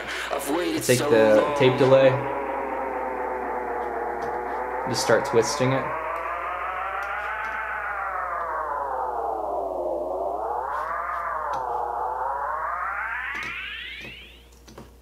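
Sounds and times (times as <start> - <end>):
warping tape delay vocal echoes: 0.0 - 14.5.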